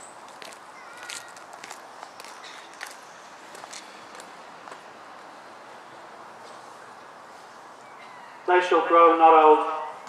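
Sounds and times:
footsteps on paving stones: 0:00.2 - 0:05.3.

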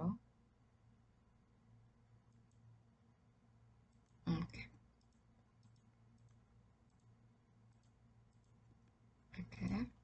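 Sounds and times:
low steady hum: 0:00.0 - 0:10.0
computer mouse clicks: 0:02.2 - 0:02.7, 0:03.8 - 0:04.2, 0:04.9 - 0:09.0.

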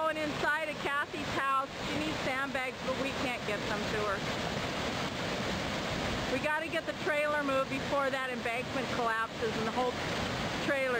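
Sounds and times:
flood water rushing: 0:00.0 - 0:10.9.

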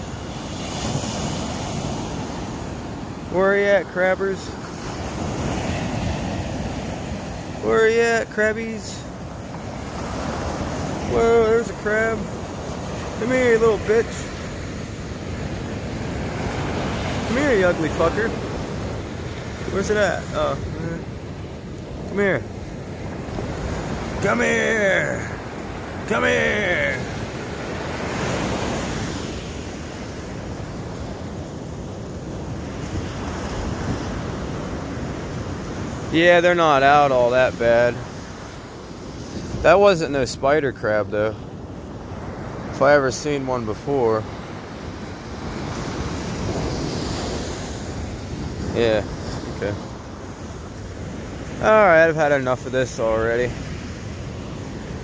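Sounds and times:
ocean surf washing up: 0:00.0 - 0:55.0.

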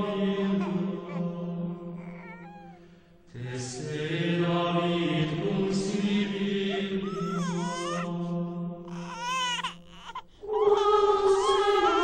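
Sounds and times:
choir-like chord: 0:00.0 - 0:02.1, 0:03.3 - 0:08.9.

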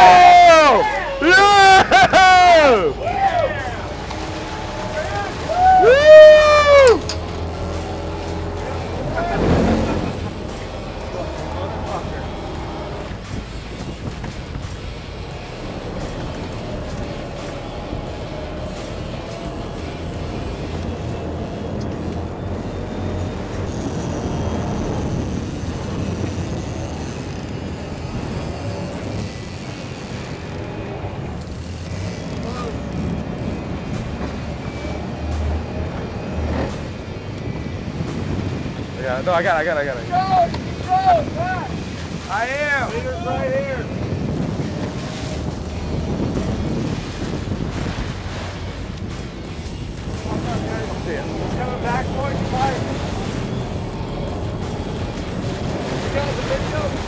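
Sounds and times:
person shouting: 0:00.0 - 0:03.6, 0:05.5 - 0:07.0
boat engines running: 0:00.0 - 0:57.0
water noise: 0:00.0 - 0:57.0
wind: 0:00.0 - 0:57.0.

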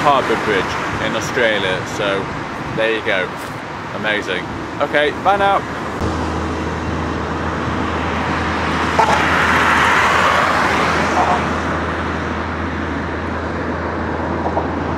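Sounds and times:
steady low traffic rumble: 0:00.0 - 0:14.9
heavy truck passing: 0:05.6 - 0:14.9.

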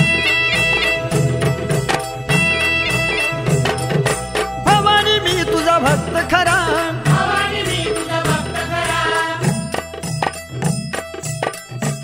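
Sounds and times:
drum strokes: 0:00.0 - 0:12.0
devotional song singing: 0:04.6 - 0:10.1.

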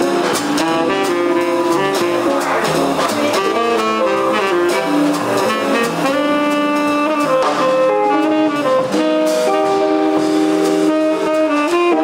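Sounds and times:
drums: 0:00.0 - 0:12.0
guitar: 0:00.0 - 0:12.0
upright bass: 0:00.0 - 0:12.0
saxophone long note: 0:00.6 - 0:12.0.

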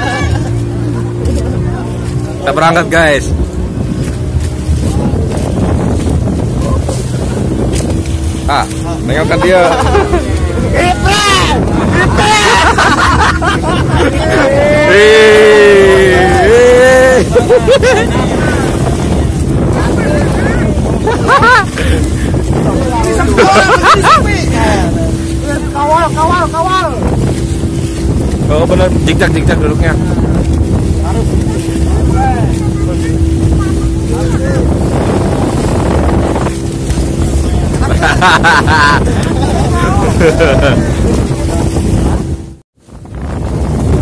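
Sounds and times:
boat engine humming: 0:00.0 - 0:44.0
water splashing against hull: 0:00.0 - 0:44.0
wind buffeting microphone: 0:00.0 - 0:44.0.

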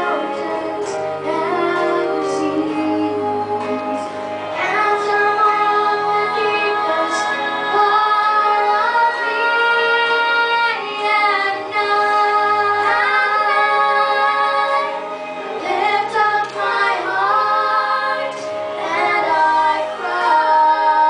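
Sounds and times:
girl and boy singing a duet: 0:00.0 - 0:21.0.

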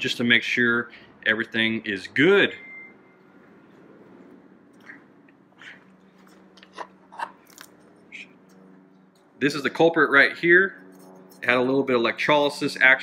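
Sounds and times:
low steady shop hum: 0:00.0 - 0:13.0.

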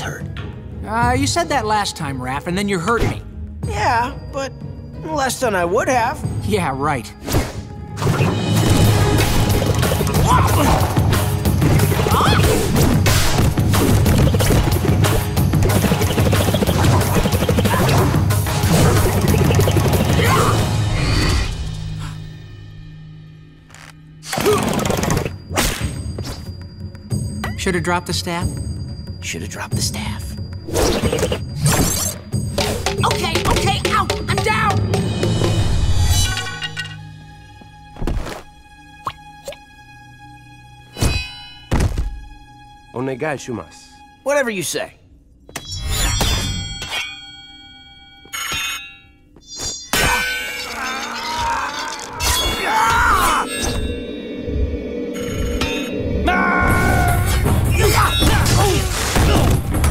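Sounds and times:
dramatic cartoon music: 0:00.0 - 0:59.9
metal blades clashing: 0:48.4 - 0:53.6.

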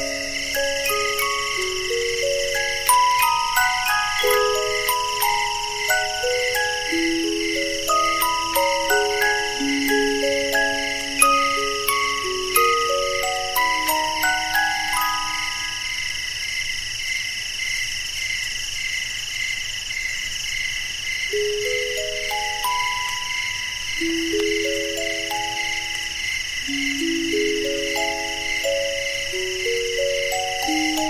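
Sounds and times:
music box melody: 0:00.0 - 0:16.2, 0:21.3 - 0:31.0
crickets chirping: 0:00.0 - 0:31.0.

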